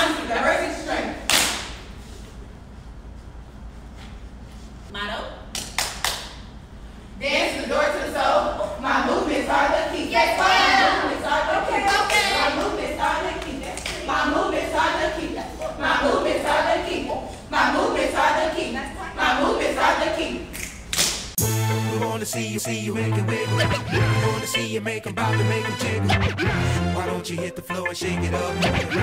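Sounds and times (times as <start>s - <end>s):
voice: 0.0s - 1.2s, 4.9s - 5.4s, 7.2s - 20.4s
low room hum: 0.0s - 21.4s
hand claps: 1.3s - 1.9s, 5.5s - 6.4s.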